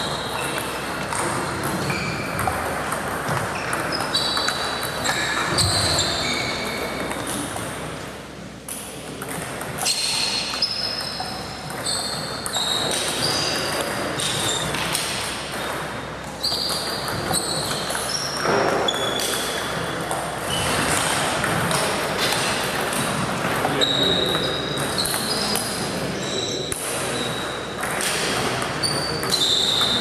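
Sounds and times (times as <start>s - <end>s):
table tennis balls pinging: 0.0s - 30.0s.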